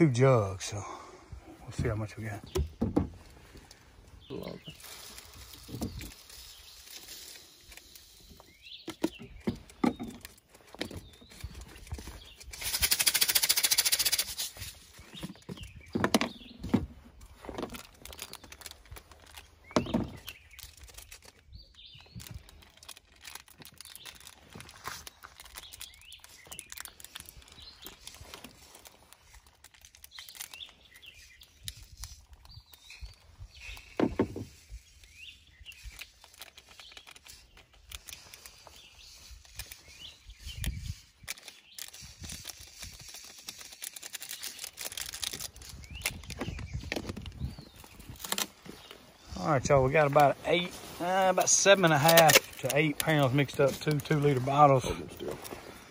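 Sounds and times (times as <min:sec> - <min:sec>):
birds chirping faintly: 0:00.0 - 0:55.9
plastic jars and lids handled: 0:01.7 - 0:13.2, 0:14.0 - 0:34.8.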